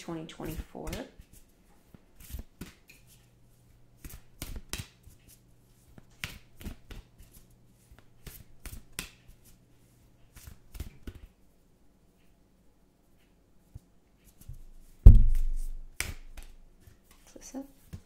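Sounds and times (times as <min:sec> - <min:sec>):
cards being shuffled: 0:04.0 - 0:05.4, 0:06.2 - 0:09.5.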